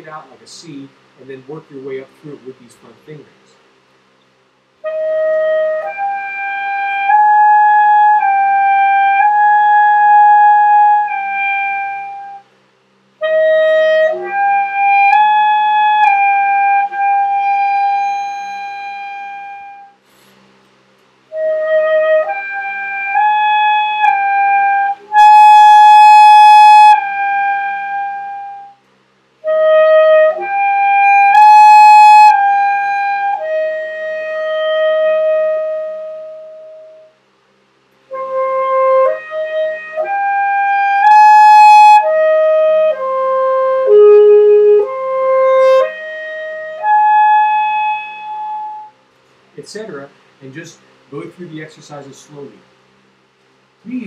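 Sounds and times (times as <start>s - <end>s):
alto saxophone playing: 4.8s - 12.5s, 13.2s - 20.2s, 21.3s - 28.8s, 29.4s - 37.2s, 38.0s - 49.0s.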